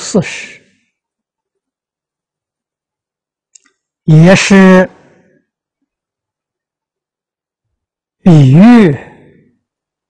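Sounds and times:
elderly man speaking: 0.0s - 0.7s, 4.0s - 5.1s, 8.2s - 9.4s.

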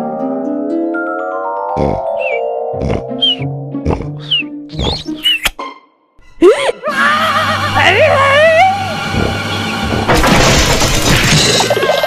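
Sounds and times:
background music: 0.0s - 9.6s
cartoon snoring with whistle: 1.8s - 5.5s.

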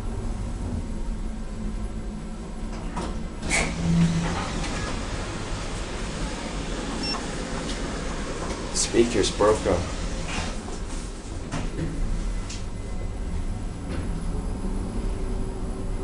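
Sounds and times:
elevator hum and rumble: 0.0s - 16.0s.

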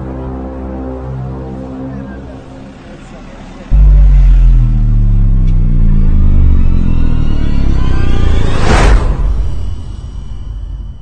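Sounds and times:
deep spacecraft hum: 3.0s - 11.0s.

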